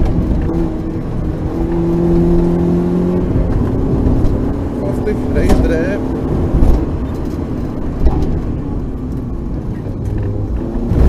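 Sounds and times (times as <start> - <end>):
car engine running hard: 0.0 - 11.0
road and wind noise: 0.0 - 11.0.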